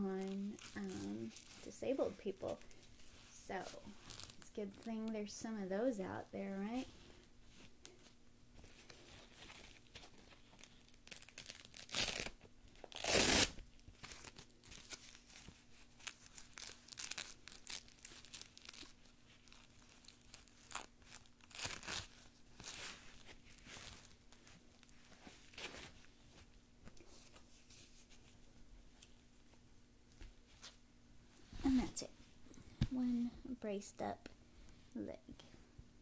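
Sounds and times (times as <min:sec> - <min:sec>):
fabric rustling: 0:00.0 - 0:04.8, 0:14.0 - 0:33.0
hook-and-loop straps tearing: 0:11.1 - 0:13.6.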